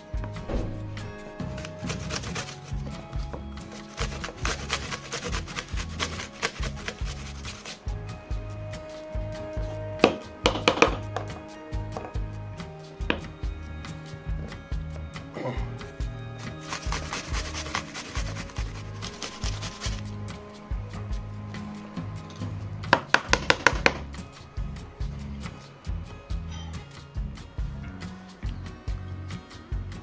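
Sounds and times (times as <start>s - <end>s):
music with a steady beat: 0.0s - 30.0s
sharp knocks: 0.4s - 1.6s, 23.0s - 24.0s
apple rasping on metal grater: 1.6s - 2.9s, 3.7s - 7.9s, 16.6s - 20.1s.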